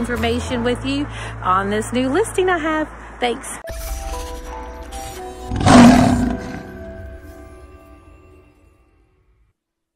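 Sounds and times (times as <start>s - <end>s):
lion roar: 5.5s - 6.8s.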